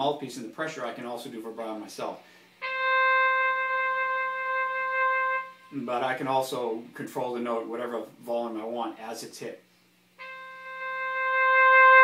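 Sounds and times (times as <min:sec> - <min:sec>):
long synthesizer note: 0:02.6 - 0:06.0, 0:10.2 - 0:12.0.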